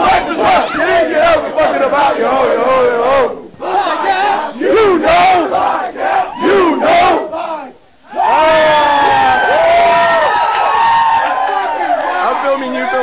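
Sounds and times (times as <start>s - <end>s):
men shouting a chant: 0.0s - 9.2s.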